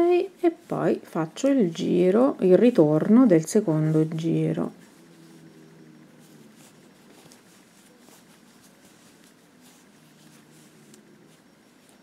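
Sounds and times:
faint yarn rustling: 0:00.0 - 0:12.0.

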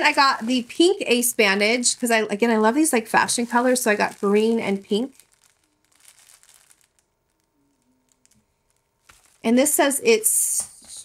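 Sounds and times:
packaging crinkling: 0:00.0 - 0:09.9.

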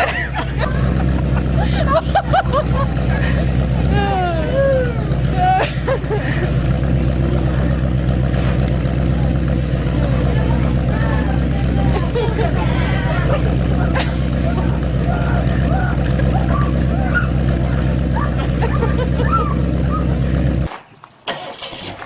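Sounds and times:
car engine running steadily: 0:00.0 - 0:20.7
faint people talking: 0:06.8 - 0:18.5.

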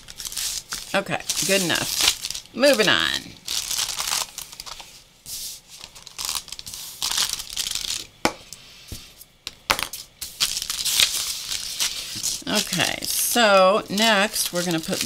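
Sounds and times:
paper rustling and crinkling: 0:00.0 - 0:08.1, 0:10.2 - 0:15.0.

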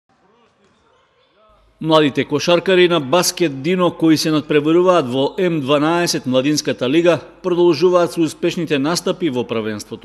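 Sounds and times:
man's voice: 0:01.8 - 0:10.0.

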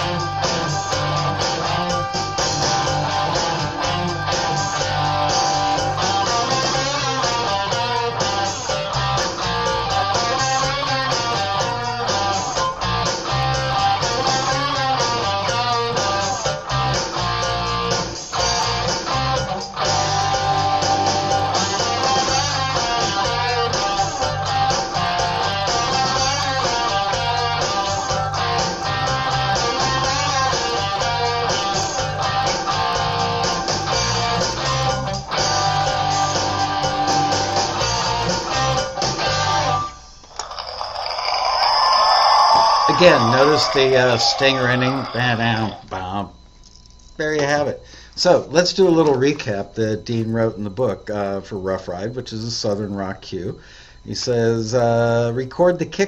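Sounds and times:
electric guitar riff: 0:00.0 - 0:39.9, 0:41.9 - 0:46.2
bass guitar: 0:00.0 - 0:40.0.

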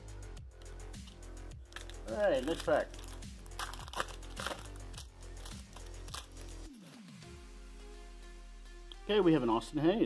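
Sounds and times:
background music: 0:00.0 - 0:10.0
wrapper tearing and crinkling: 0:01.6 - 0:07.2.

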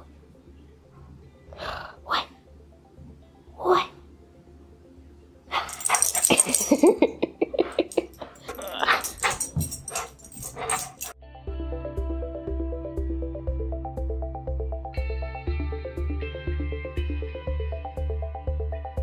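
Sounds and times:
background music: 0:00.0 - 0:19.0
dog barking in play: 0:05.5 - 0:06.7, 0:07.7 - 0:11.1.

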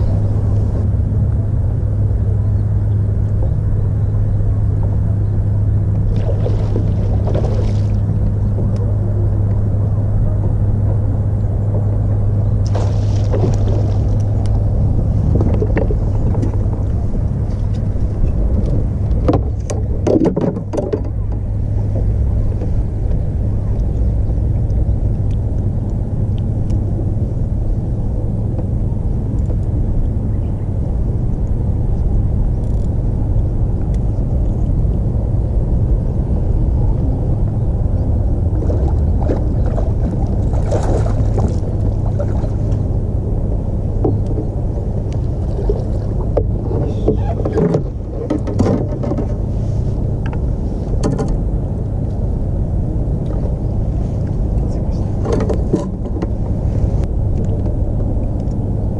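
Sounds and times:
boat engine rumble: 0:00.0 - 0:58.9
rattling and splashing: 0:06.0 - 0:08.8, 0:12.6 - 0:22.2, 0:38.4 - 0:43.0, 0:43.8 - 0:51.4.

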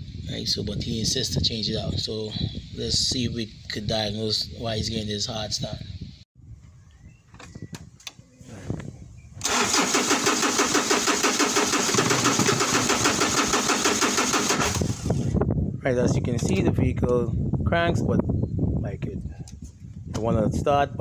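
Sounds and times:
diesel engine cranking: 0:09.4 - 0:15.4.

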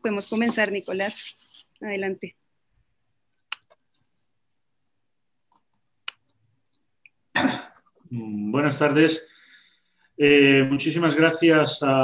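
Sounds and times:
person coughing: 0:07.3 - 0:07.9.

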